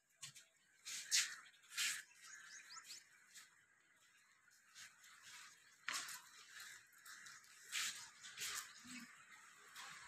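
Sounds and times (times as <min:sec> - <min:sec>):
faint bird chirps: 0:00.8 - 0:04.2, 0:06.2 - 0:10.0.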